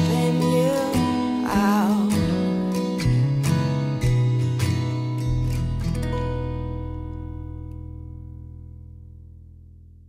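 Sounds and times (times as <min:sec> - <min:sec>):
acoustic guitar strummed: 0:00.0 - 0:09.8.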